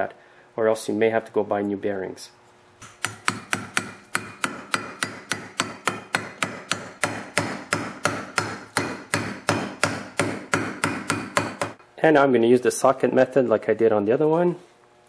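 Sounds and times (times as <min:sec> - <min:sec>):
hammer tapping on metal: 0:02.8 - 0:11.8.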